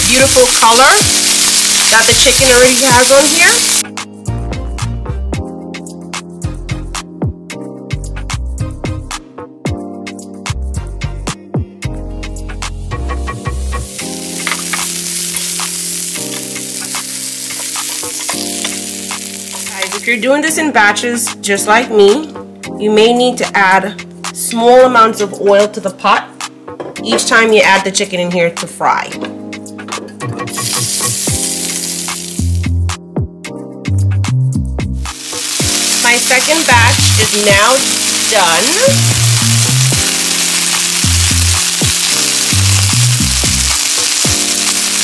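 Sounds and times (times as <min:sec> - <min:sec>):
chicken sizzling in a skillet: 0:00.0 - 0:03.8, 0:13.6 - 0:20.2, 0:30.5 - 0:32.7, 0:35.0 - 0:45.0
background music: 0:00.0 - 0:45.0
spatula turning food in skillet: 0:14.0 - 0:20.1.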